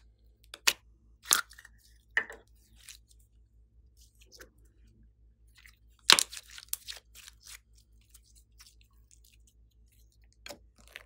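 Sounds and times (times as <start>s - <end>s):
slime crackling squelch: 5.5s - 11.0s.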